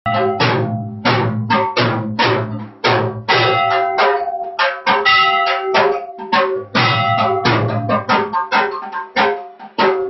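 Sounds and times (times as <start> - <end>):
drums struck in steady rhythm: 0.0 - 10.0.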